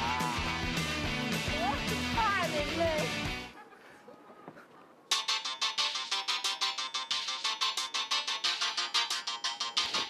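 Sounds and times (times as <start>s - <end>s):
plinky electronic music: 5.1s - 10.0s.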